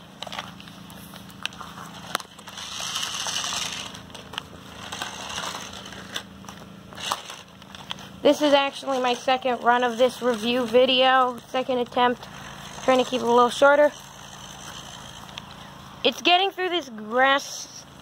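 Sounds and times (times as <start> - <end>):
toy truck electric motor whirring: 1.4 - 16.3.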